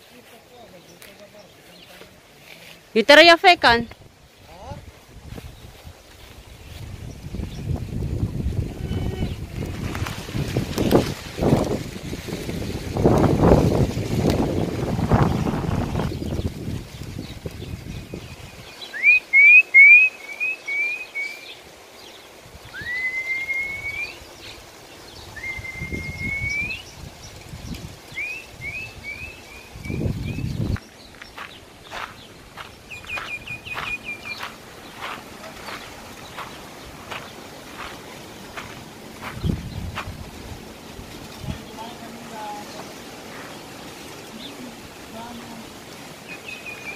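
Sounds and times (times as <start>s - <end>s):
low rumbling microphone noise: 0.0s - 18.8s, 23.7s - 45.9s
songbird chirps and whistles: 18.4s - 21.6s, 22.7s - 24.6s, 25.2s - 27.0s, 28.1s - 37.9s, 46.3s - 46.9s.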